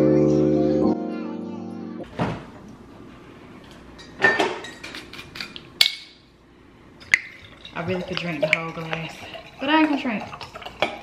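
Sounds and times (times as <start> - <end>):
dishes clinking: 3.9 - 6.2, 7.0 - 11.0.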